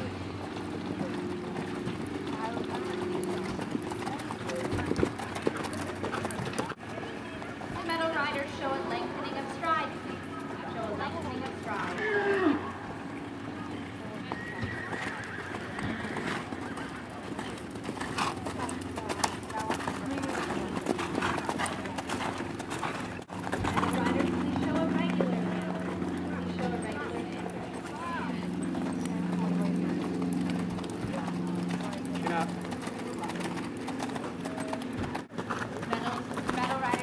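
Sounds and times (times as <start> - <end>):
steady low hum: 0.0 - 14.4, 16.4 - 37.0
horse hoofbeats on sand: 14.3 - 37.0.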